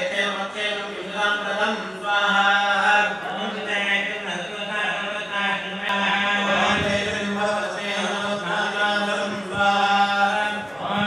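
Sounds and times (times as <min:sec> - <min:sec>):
men chanting through microphone: 0:00.0 - 0:11.0.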